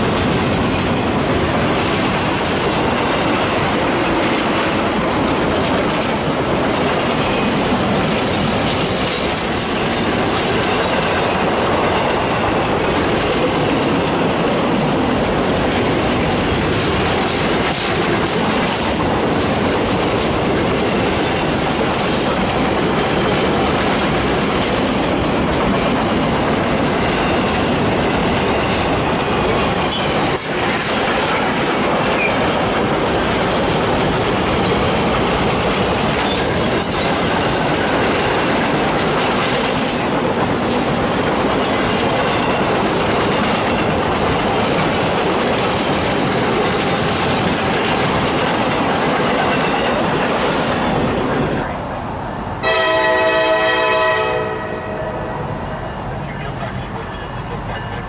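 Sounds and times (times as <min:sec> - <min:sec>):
train wheels clicking over rails: 0:00.0 - 0:51.8
locomotive air horn: 0:52.6 - 0:55.5.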